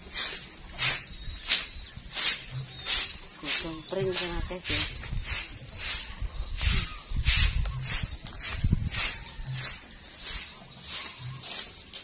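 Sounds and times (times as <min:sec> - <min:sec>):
broom sweeping grass and dirt: 0:00.0 - 0:12.0
person speaking: 0:03.4 - 0:05.0.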